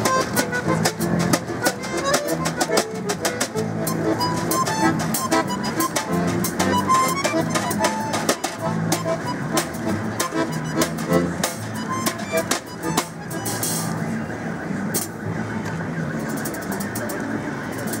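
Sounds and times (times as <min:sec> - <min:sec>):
balalaika strummed chords: 0:00.0 - 0:14.0
button accordion notes: 0:00.0 - 0:14.0.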